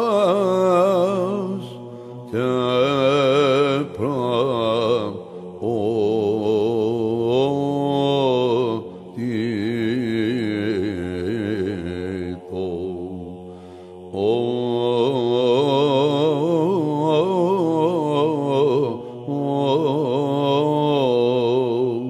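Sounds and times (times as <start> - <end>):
held vocal drone: 0.0 - 22.0
ornamented chant melody: 0.0 - 22.0.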